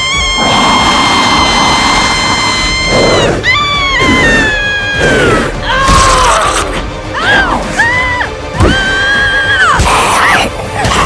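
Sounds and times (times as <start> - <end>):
woman screaming: 0.0 - 10.4.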